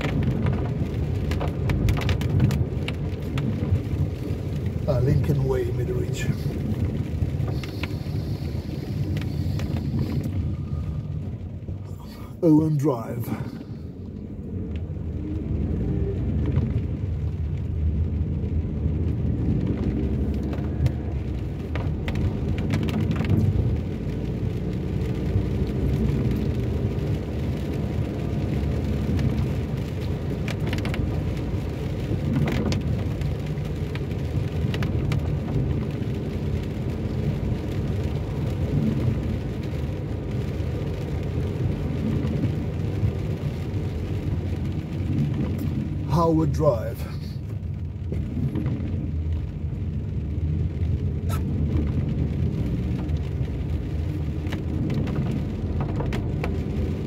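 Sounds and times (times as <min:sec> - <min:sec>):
car engine rumble: 0:00.0 - 0:57.0
rain falling on car: 0:00.0 - 0:57.0
tyres on wet tarmac: 0:00.0 - 0:57.0.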